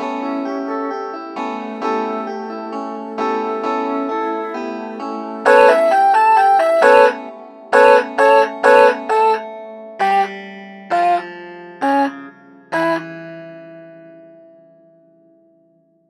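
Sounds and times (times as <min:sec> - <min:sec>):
synth clavinet chord stabs: 0:05.5 - 0:07.2, 0:07.8 - 0:09.4, 0:10.0 - 0:13.5.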